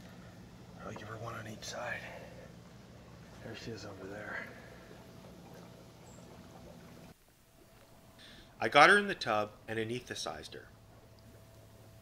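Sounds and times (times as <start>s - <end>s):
low hum: 0.0s - 12.0s
running water in pond: 0.0s - 12.0s.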